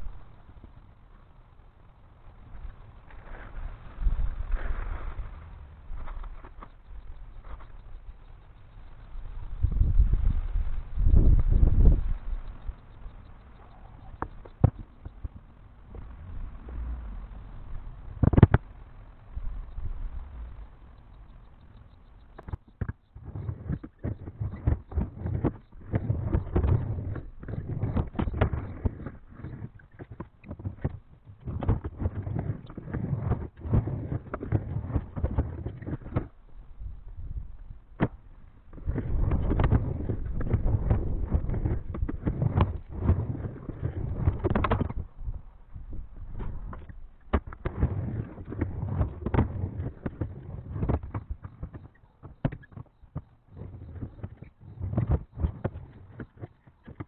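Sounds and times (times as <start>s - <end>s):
skateboard wheels rolling on wood: 0.0s - 13.0s, 13.6s - 57.0s.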